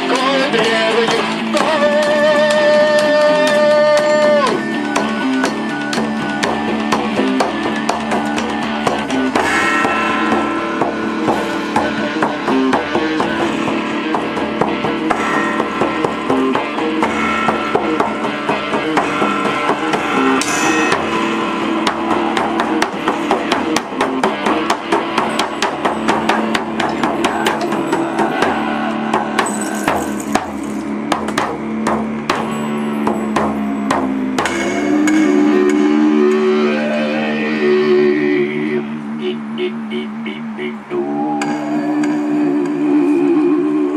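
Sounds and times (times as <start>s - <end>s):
frame drum: 0.0s - 36.1s
electric guitar: 0.0s - 39.6s.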